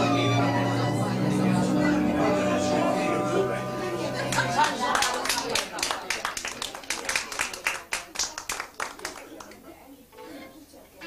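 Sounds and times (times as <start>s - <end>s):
held song notes: 0.0s - 6.0s
people talking: 0.0s - 11.0s
people clapping: 4.2s - 9.7s.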